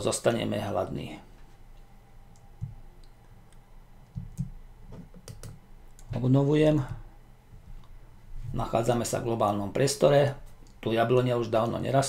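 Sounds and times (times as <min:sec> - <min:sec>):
keyboard and mouse clicks: 0:02.3 - 0:06.1
soft low thumps: 0:04.1 - 0:05.2.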